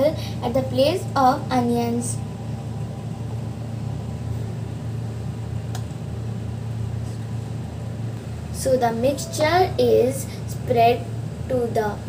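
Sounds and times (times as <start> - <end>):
low mechanical hum: 0.0 - 12.0.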